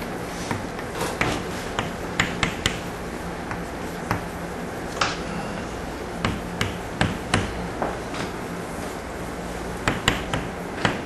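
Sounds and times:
low steady hum: 0.0s - 11.0s
chalk tapping on blackboard: 0.4s - 4.4s, 6.2s - 8.0s, 9.8s - 11.0s.

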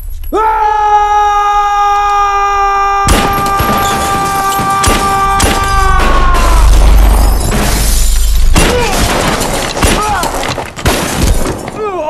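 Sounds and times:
man screaming: 0.3s - 7.1s.

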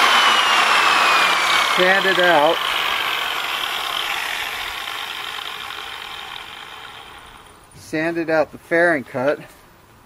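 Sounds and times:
angle grinder spinning down: 0.0s - 7.6s.

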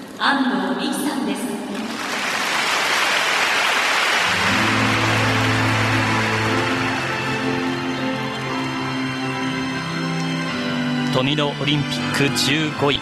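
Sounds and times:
audience applauding: 1.8s - 10.4s.

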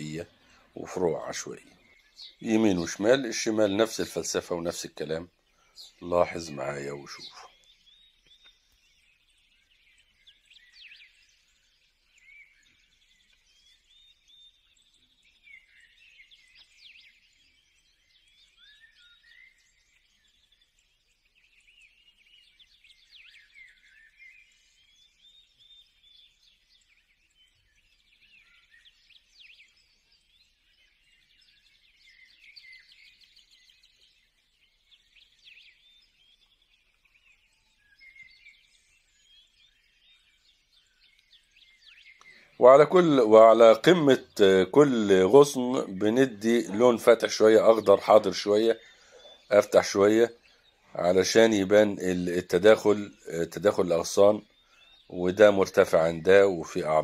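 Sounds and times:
faint bird chirps: 0.0s - 57.0s.

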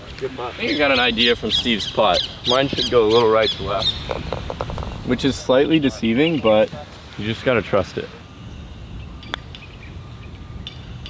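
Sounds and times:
background hiss and rumble: 0.0s - 11.0s.

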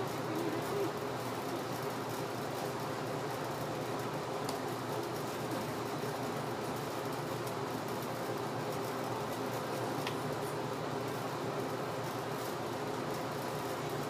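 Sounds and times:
room noise hum and hiss: 0.0s - 14.0s.

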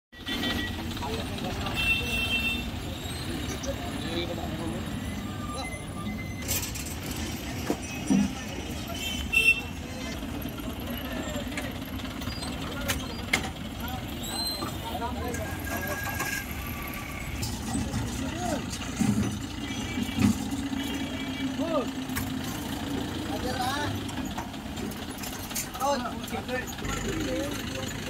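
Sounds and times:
truck engines rumbling: 0.2s - 28.0s.

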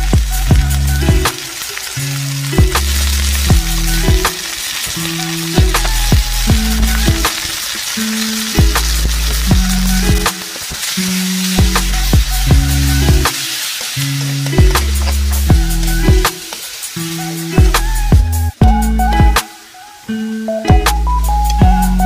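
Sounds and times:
music with bass and beat: 0.0s - 19.6s, 20.4s - 22.0s
pork sizzling in oil: 0.0s - 22.0s.

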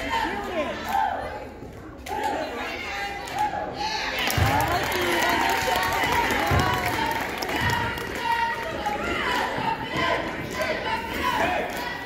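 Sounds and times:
many voices talking over one another: 0.0s - 12.0s.

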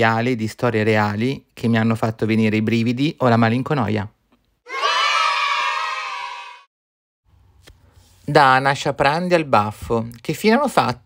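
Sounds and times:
children cheering: 4.7s - 6.7s.

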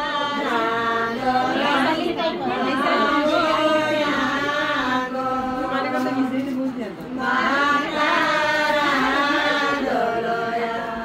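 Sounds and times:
women singing in unison: 0.0s - 11.0s.

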